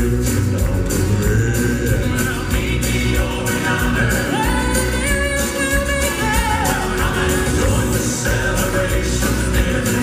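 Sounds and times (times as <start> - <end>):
electric bass guitar: 0.0 - 10.0
male quartet singing in harmony: 0.0 - 10.0
piano: 0.0 - 10.0.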